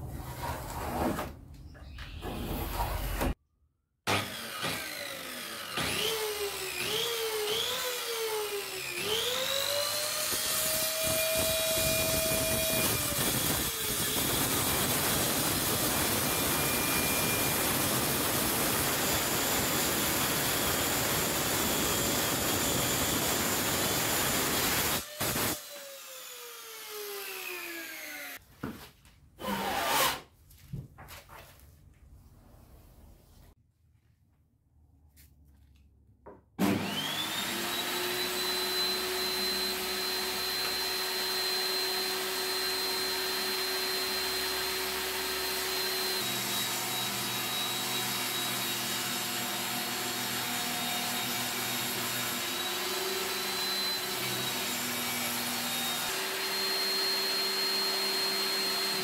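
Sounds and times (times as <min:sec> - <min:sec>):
circular saw cutting wood: 0:04.1 - 0:28.4, 0:29.4 - 0:30.2, 0:36.6 - 0:59.0.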